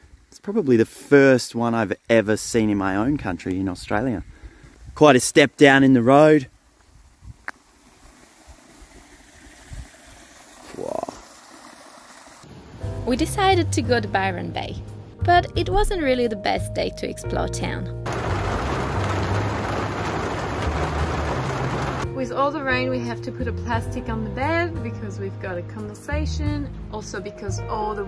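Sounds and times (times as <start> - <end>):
wind rumble on microphone: 6.9 - 7.5
heavy rain on roof and window: 18.1 - 22.1.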